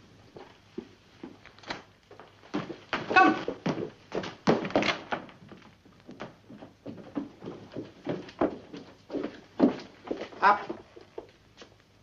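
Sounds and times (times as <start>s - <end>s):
footsteps: 0.0s - 12.0s.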